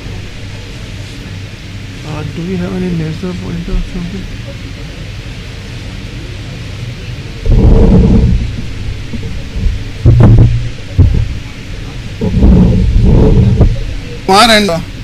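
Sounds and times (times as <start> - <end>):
boomy low rumbling bursts: 0.0 - 15.0
steady hum: 0.0 - 15.0.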